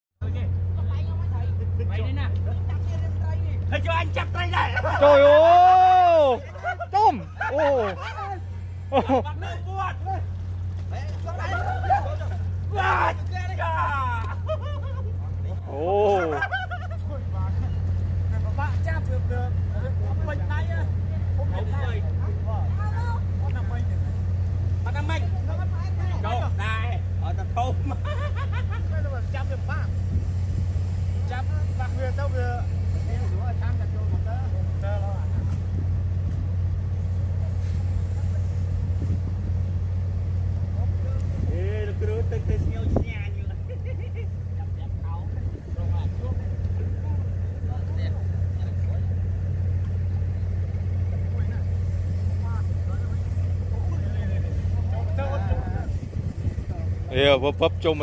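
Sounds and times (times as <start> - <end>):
people talking and calling out: 0.2 - 58.0
small engine droning: 0.2 - 58.0.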